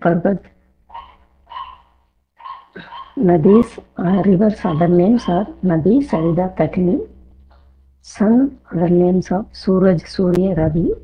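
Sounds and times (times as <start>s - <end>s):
low steady hum: 0.0s - 11.0s
faint breathy vocal sounds: 2.7s - 3.2s.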